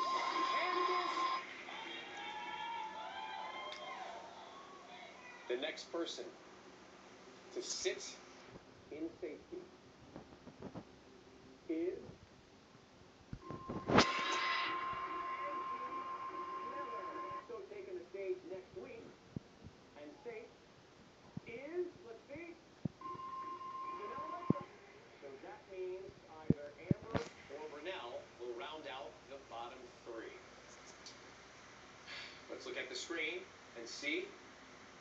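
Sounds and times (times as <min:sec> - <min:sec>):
voices cheering: 0:00.0 - 0:05.5, 0:14.0 - 0:17.4.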